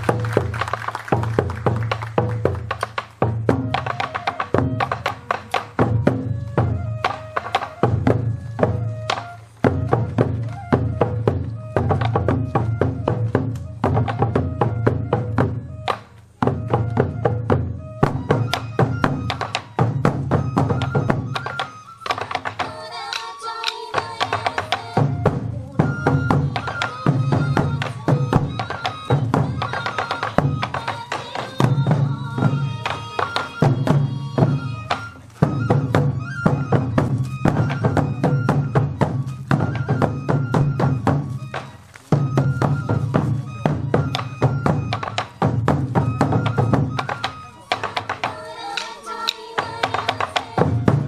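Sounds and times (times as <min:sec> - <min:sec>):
flute melody: 0:00.0 - 0:51.0
taiko drums struck with sticks: 0:00.0 - 0:51.0.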